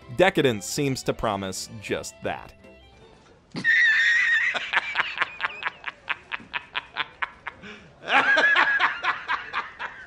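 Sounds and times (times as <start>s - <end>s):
man laughing hard: 3.6s - 10.0s.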